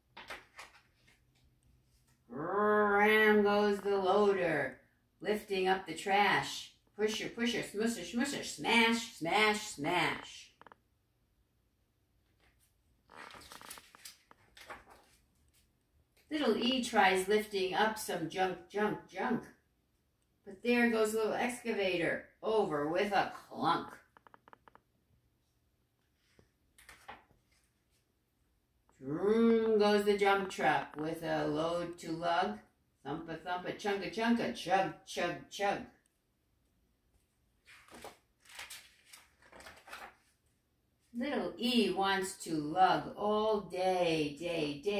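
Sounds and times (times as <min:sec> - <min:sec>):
book pages turning: 0:00.0 - 0:02.2, 0:12.2 - 0:16.3, 0:26.1 - 0:28.1, 0:37.5 - 0:40.5.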